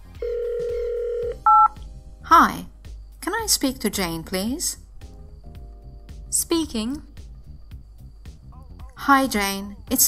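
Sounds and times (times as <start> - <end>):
telephone dial tone: 0.2 - 1.7
touch-tone keypad beep: 1.5 - 1.8.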